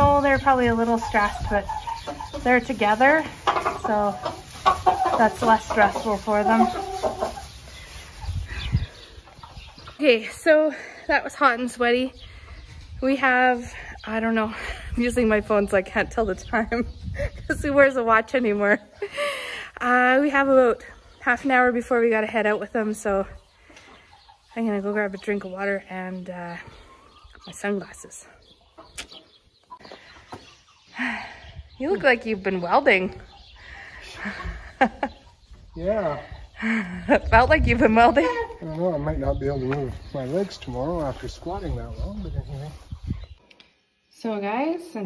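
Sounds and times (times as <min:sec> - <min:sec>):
chickens clucking faintly: 0:00.0 - 0:11.1
chickens clucking and peeping: 0:00.0 - 0:43.4.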